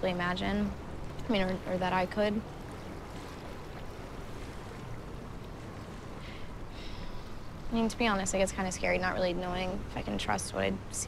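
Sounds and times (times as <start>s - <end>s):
low outdoor rush: 0.0s - 3.2s, 4.0s - 11.0s.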